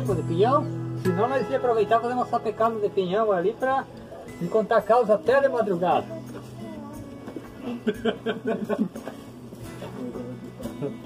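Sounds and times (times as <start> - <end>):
background music with guitar: 0.0 - 11.0.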